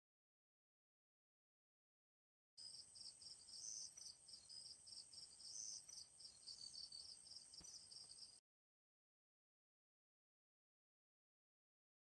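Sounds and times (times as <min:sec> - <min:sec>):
crickets chirping: 0:02.6 - 0:08.4.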